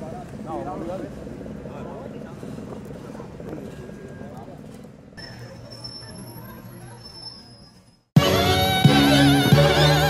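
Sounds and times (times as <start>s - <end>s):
traffic rumble: 0.0s - 10.0s.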